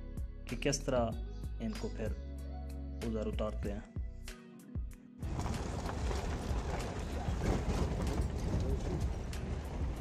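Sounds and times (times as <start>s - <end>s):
truck road rumble: 5.2s - 10.0s
wind buffeting microphone: 5.2s - 10.0s.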